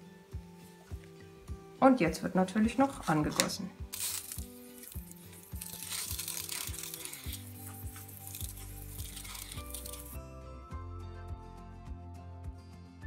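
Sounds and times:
background music: 0.0 - 13.0
pressure sprayer hissing: 4.1 - 10.1.

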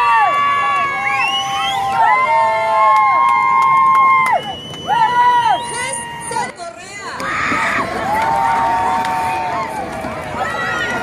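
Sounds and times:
stadium crowd cheering: 0.0 - 11.0.

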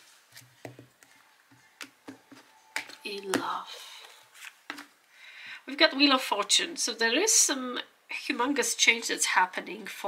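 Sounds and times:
cards clicking and tapping: 0.4 - 3.4, 4.0 - 4.9.

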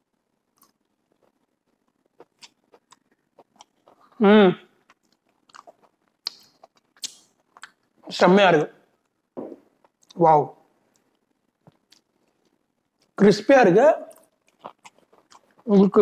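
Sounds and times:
person chewing crunchy food: 0.6 - 4.2, 4.8 - 7.9, 14.1 - 15.7.

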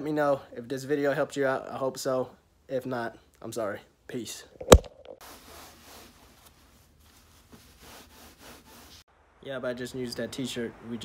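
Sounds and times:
faint rustling and rubbing: 5.1 - 9.1.

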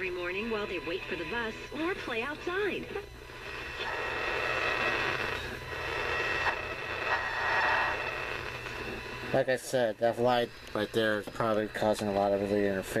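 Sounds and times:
radio static hiss: 0.0 - 13.0
steady buzzing hum: 0.0 - 13.0
thin high whine: 0.0 - 13.0.

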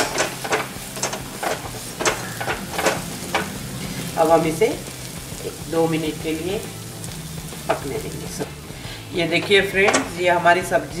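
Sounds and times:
frying sizzle: 0.0 - 11.0.

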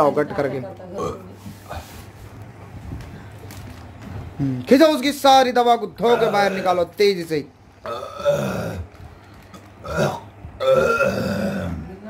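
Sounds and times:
man belching into plastic bag: 1.0 - 1.2, 6.1 - 6.8, 7.8 - 11.9.

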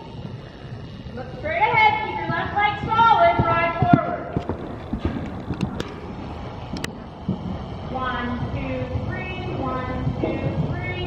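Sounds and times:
horse hooves thudding on dirt: 0.0 - 11.0.

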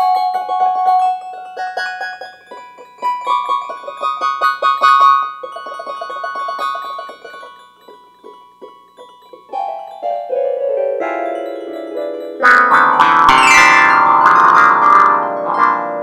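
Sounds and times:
instrumental keyboard music: 0.0 - 16.0.

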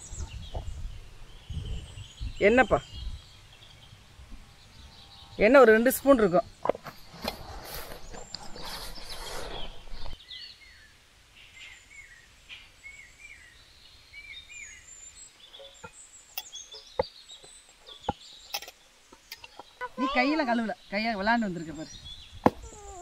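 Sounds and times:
small birds chirping: 0.0 - 23.0.

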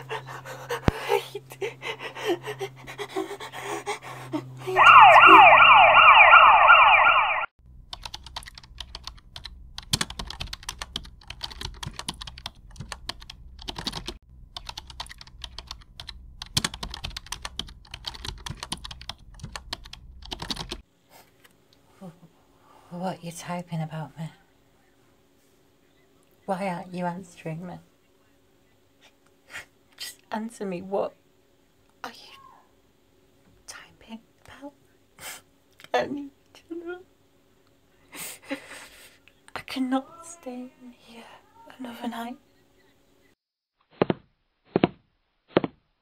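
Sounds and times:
siren wailing: 4.6 - 7.5
computer keyboard typing: 7.9 - 20.8.

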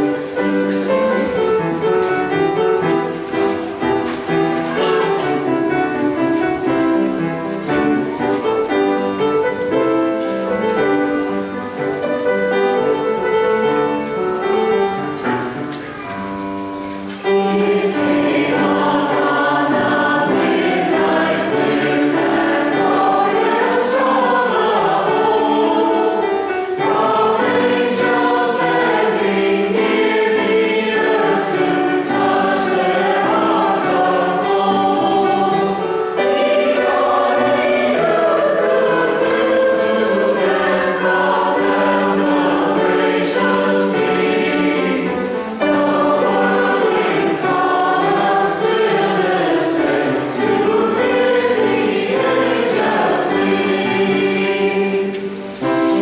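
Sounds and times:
mixed church choir singing: 0.0 - 56.0.

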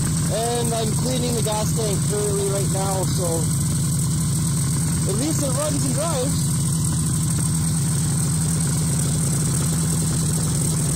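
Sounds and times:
snowmobile engine idling: 0.0 - 10.9.

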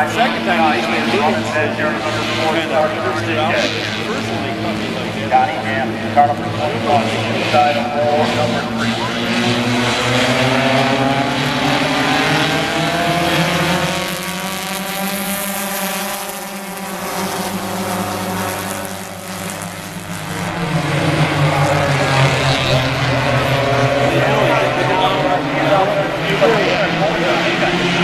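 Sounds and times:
race car engines revving: 0.0 - 28.0.

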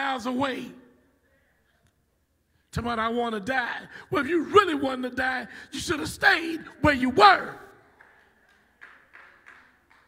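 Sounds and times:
man's amplified voice echoing: 0.0 - 1.1, 2.6 - 7.8.

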